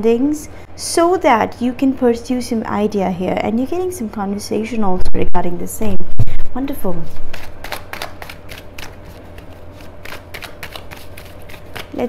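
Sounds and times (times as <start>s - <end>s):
low steady hum: 0.0s - 12.0s
cards being shuffled: 7.2s - 12.0s.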